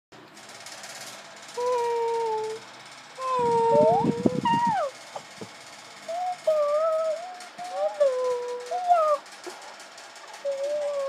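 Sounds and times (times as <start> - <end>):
person hooting: 3.2 - 5.0, 6.1 - 9.2.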